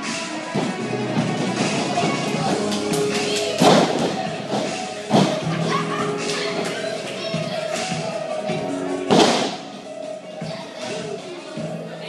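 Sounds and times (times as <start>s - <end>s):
music playing in hall: 0.0s - 12.0s.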